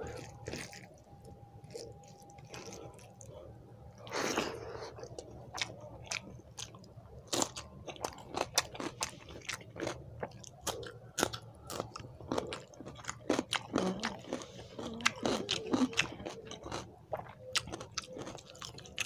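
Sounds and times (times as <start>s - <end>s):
chewing rice: 0.0s - 19.0s.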